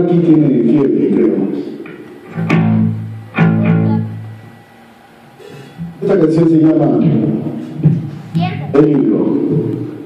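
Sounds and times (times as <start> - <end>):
electric guitar low notes: 1.0 - 6.2.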